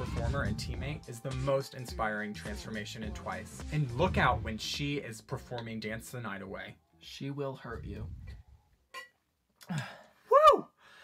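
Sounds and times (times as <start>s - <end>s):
man sighing: 9.6s - 11.0s
man exclaiming whoa: 10.3s - 10.7s.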